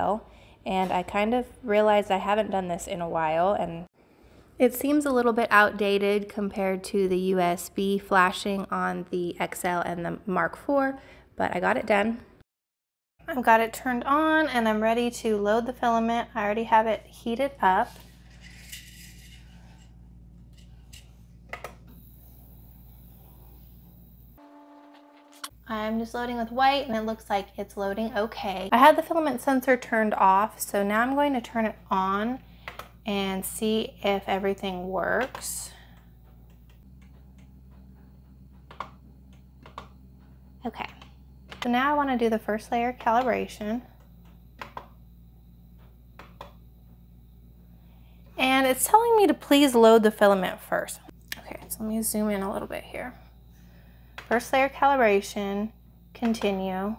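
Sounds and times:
low steady hum: 0:13.2 - 0:56.9
printer hum with cooling fan: 0:31.7 - 0:47.7.

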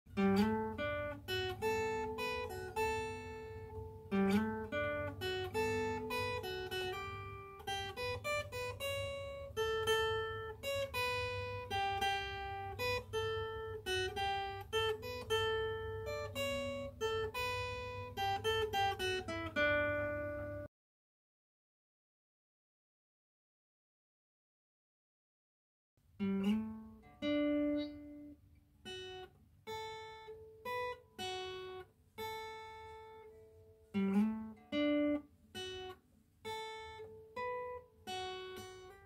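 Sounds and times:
acoustic guitar melody: 0:00.1 - 0:20.7, 0:26.2 - 0:39.0.

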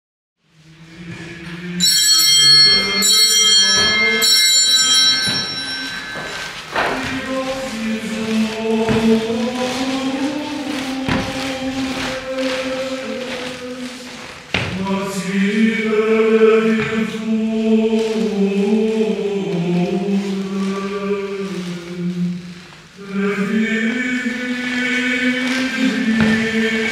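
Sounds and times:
voices singing a slow chant: 0:00.4 - 0:26.9
bright high ringing tones: 0:01.6 - 0:08.2.

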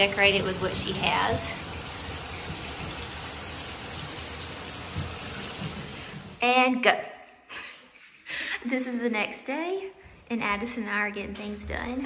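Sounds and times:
water running: 0:00.0 - 0:06.5.

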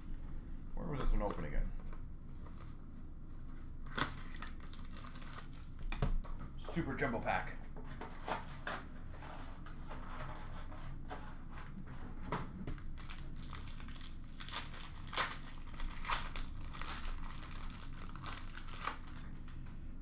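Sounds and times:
foil wrapper crinkling and tearing: 0:03.9 - 0:06.0, 0:12.7 - 0:19.4.

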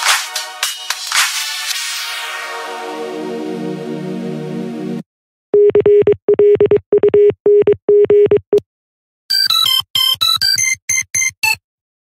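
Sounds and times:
electronic beeps like morse code: 0:09.3 - 0:11.6.

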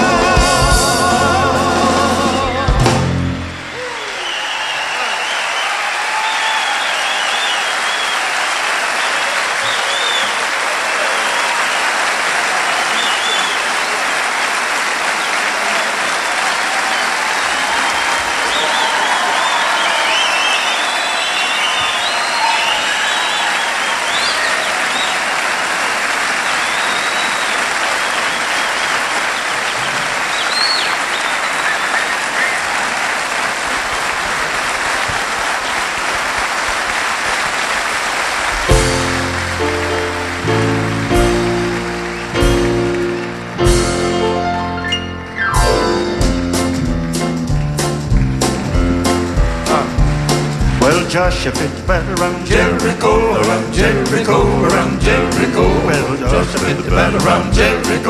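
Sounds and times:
audience applauding: 0:00.0 - 0:58.0
scattered cheers: 0:03.4 - 0:43.5.

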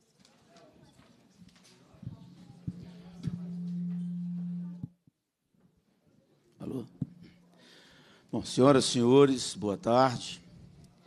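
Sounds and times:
low electronic tone: 0:02.1 - 0:05.0, 0:06.7 - 0:07.6.

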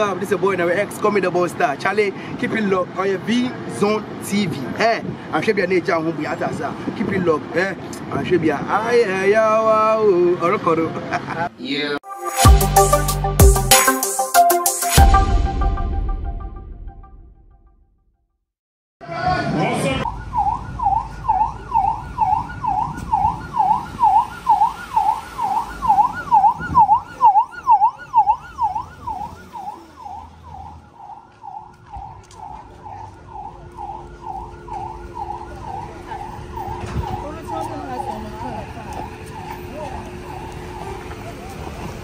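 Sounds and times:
siren wailing: 0:19.9 - 0:42.0.

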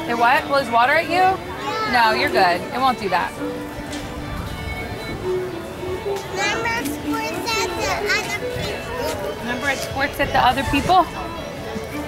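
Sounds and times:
background music: 0:00.0 - 0:12.0
children chattering and calling: 0:00.0 - 0:12.0.

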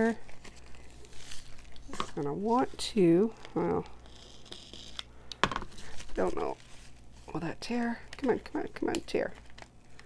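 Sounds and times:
tape scraping on paper: 0:03.8 - 0:05.1.

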